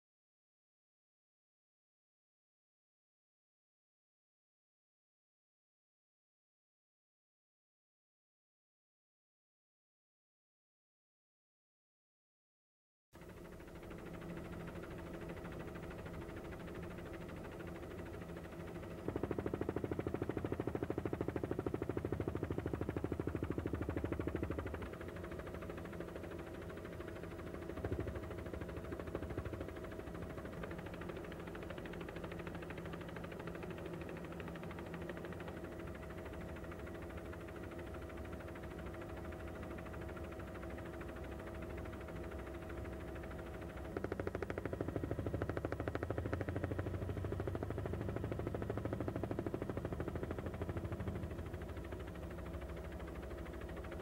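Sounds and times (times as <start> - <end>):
aircraft engine drone: 13.2 - 54.0.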